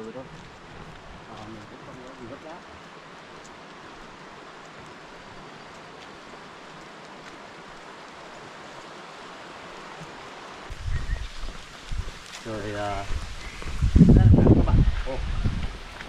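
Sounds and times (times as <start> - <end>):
faint footsteps: 0.0 - 9.0, 9.7 - 16.0
rushing outdoor noise: 0.0 - 16.0.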